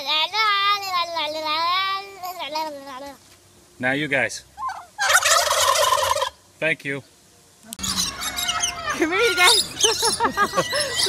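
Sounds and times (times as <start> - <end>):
child's high-pitched voice: 0.0 - 3.2.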